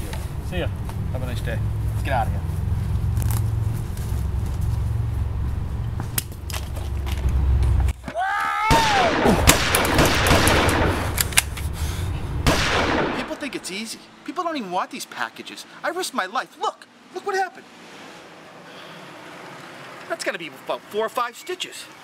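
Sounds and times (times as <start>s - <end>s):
steady low rumble: 0.0s - 8.0s, 8.8s - 13.6s
sharp cracks and bangs: 6.1s - 11.7s, 12.4s - 13.8s
person yelling: 8.0s - 9.5s.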